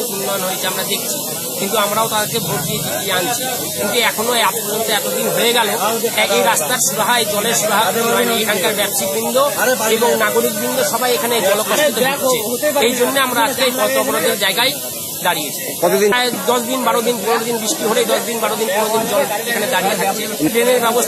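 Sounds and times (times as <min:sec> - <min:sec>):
person talking: 0:00.0 - 0:21.0
steady hiss: 0:00.0 - 0:21.0.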